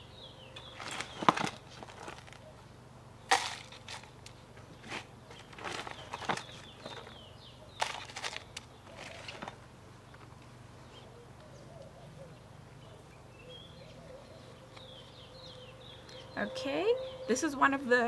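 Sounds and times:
trowel scooping bark chips: 0:03.3 - 0:07.1, 0:07.8 - 0:09.5.

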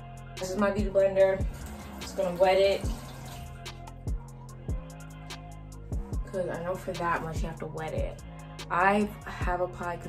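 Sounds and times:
hip-hop beat: 0:00.0 - 0:10.0
water running from a tap: 0:00.4 - 0:04.2.

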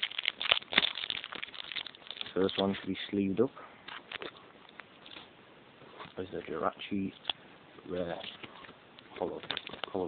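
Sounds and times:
plastic sleeve crinkling: 0:00.0 - 0:03.3, 0:05.9 - 0:10.0.

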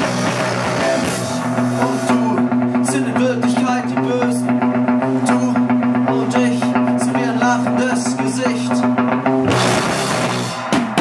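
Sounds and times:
picked guitar notes: 0:00.0 - 0:11.0
rock band playing live: 0:00.0 - 0:11.0.

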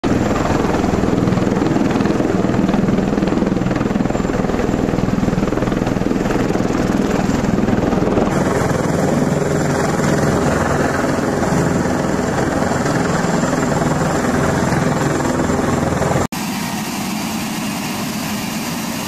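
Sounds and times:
tiltrotor aircraft rotor beat: 0:00.0 - 0:19.0.

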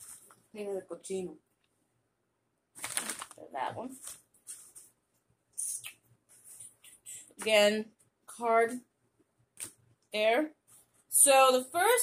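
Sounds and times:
packaging rustling: 0:02.8 - 0:05.0.

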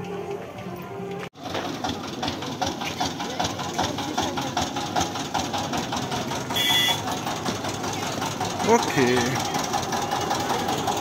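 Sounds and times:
murmur of voices: 0:00.0 - 0:11.0
small engine knocking steadily: 0:01.4 - 0:11.0.

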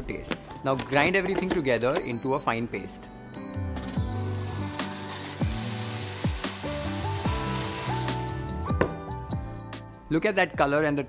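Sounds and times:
background music: 0:00.0 - 0:11.0
blender grinding: 0:04.0 - 0:08.6.

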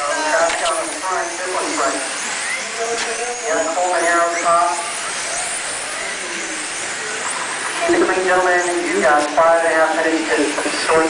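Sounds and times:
motor whines of passing cars: 0:00.0 - 0:11.0
rc car motors hissing: 0:00.0 - 0:11.0.

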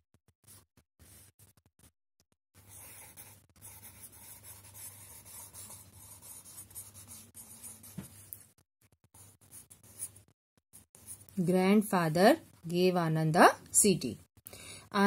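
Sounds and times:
pencil writing on paper: 0:02.6 - 0:11.4.

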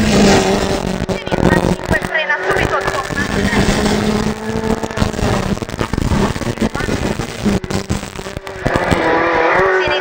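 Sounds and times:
car engine at high revs: 0:00.0 - 0:10.0.

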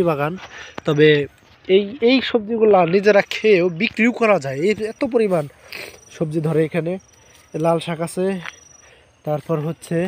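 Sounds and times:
man talking: 0:00.0 - 0:08.6, 0:09.2 - 0:10.0
insects trilling: 0:00.0 - 0:10.0.

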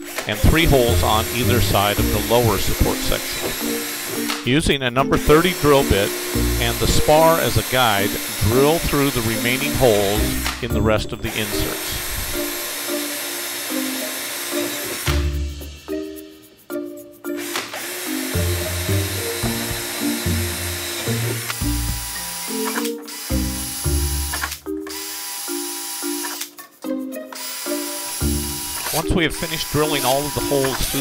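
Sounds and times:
cordless drill drilling metal: 0:00.0 - 0:04.5, 0:05.2 - 0:15.3, 0:17.4 - 0:26.6, 0:27.3 - 0:31.0
background music: 0:00.0 - 0:31.0.

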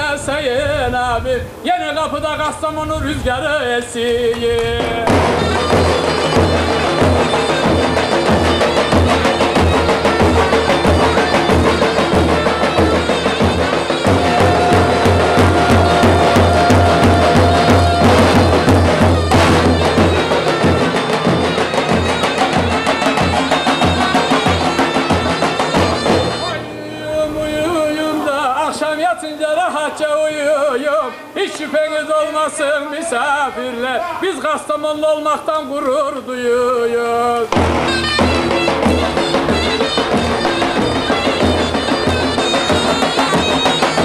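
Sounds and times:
drums beaten with mallets: 0:04.7 - 0:28.6, 0:37.5 - 0:44.0
shrill reed melody: 0:05.0 - 0:31.4, 0:37.4 - 0:44.0.

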